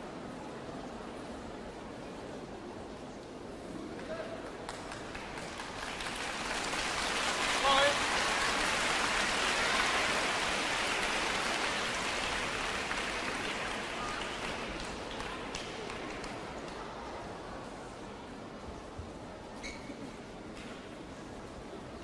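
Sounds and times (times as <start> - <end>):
audience applauding: 4.5 - 16.8.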